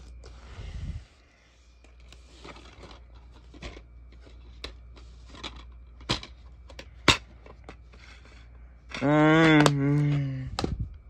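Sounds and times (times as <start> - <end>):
plastic cases clicking and tapping: 8.9 - 10.7.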